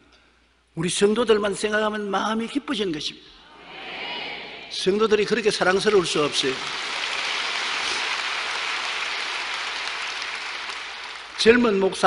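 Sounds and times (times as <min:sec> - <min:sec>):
large crowd applauding: 0:05.9 - 0:11.8.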